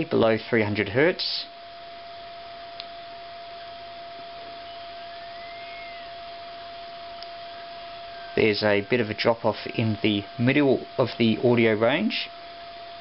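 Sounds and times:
faint gliding whistle: 4.4 - 9.1
radio band hiss: 7.4 - 12.4.

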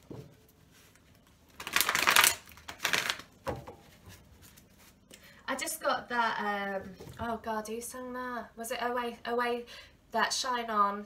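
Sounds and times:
cards being shuffled: 0.8 - 3.4.

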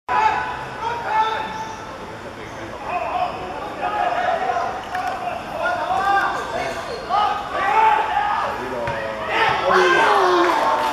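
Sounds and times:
voices shouting and calling out: 0.1 - 10.9.

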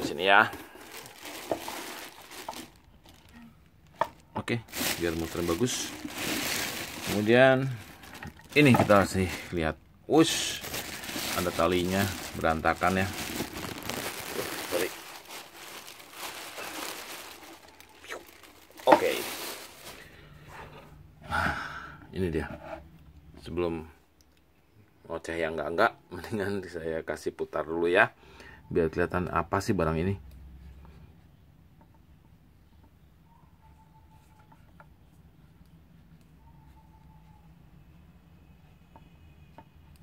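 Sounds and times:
rustling of boots and packing: 0.0 - 9.6, 10.3 - 20.2.

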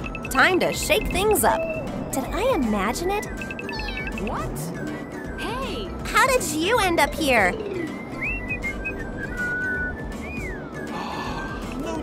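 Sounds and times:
light background music: 0.0 - 12.0
person whistling: 8.1 - 10.9.

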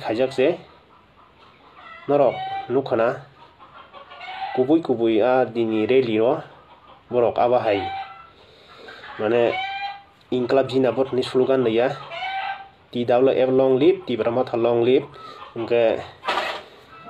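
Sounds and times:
man talking: 0.0 - 0.7, 2.1 - 3.3, 4.6 - 6.5, 7.1 - 8.0, 9.2 - 9.6, 10.3 - 12.1, 13.0 - 16.2.

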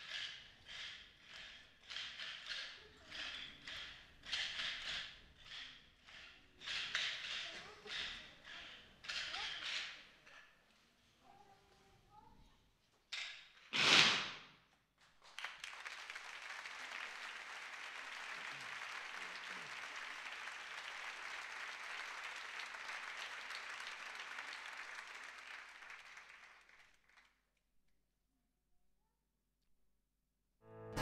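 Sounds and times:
audience applause: 15.2 - 27.3.

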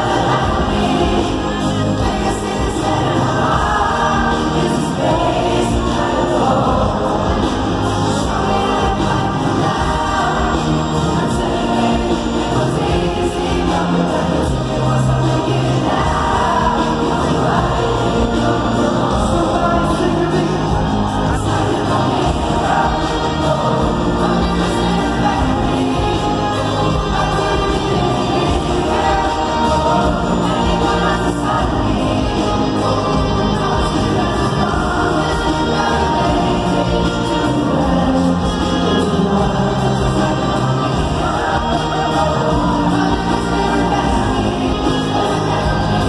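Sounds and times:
live pop band with singing: 0.0 - 46.0.

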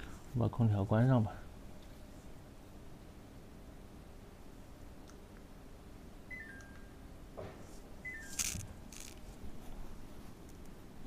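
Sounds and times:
air conditioner falling chime: 6.3 - 7.1, 8.0 - 8.8
brief rustle: 8.2 - 9.4.

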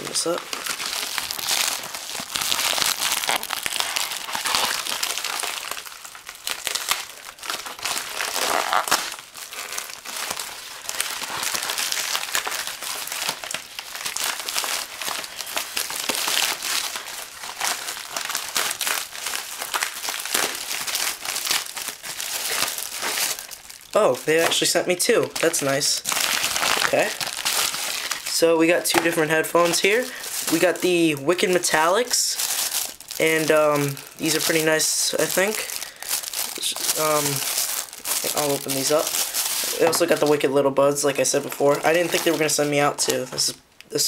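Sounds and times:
plastic mailer tearing: 0.0 - 40.3, 41.5 - 43.2
plastic crinkling and rustling: 0.0 - 44.0.

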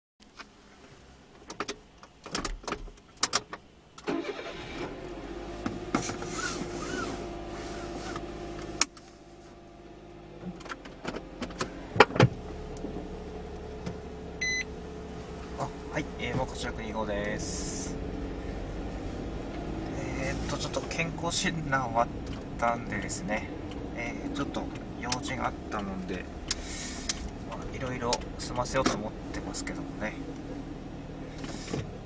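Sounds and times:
car engine starting and idling: 1.0 - 32.0
short electronic beep: 14.4 - 14.7.

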